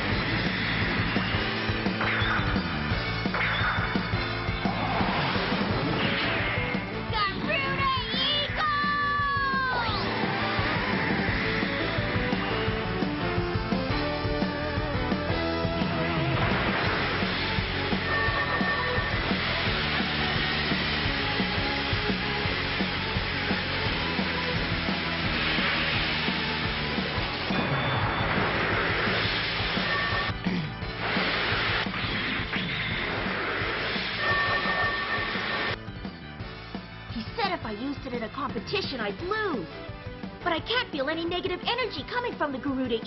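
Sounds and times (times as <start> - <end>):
background music: 0.0 - 43.0
hissing rushing whoosh: 10.0 - 13.0.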